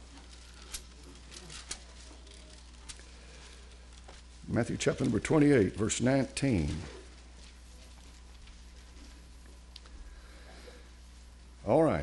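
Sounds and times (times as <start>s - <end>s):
paper rustling: 0.0s - 9.8s
low electrical hum: 0.0s - 12.0s.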